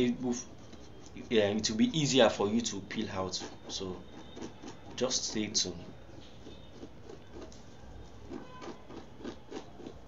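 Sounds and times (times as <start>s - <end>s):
fingernail scratching a print: 0.0s - 10.0s.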